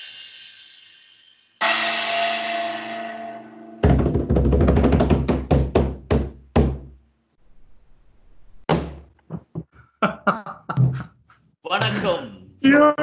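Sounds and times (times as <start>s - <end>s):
cymbal crash: 0.0s - 3.8s
drum roll and hits: 3.8s - 6.8s.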